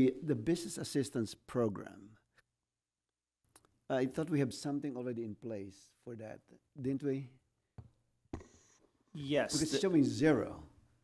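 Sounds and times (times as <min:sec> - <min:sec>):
person speaking: 0:09.1 - 0:10.7.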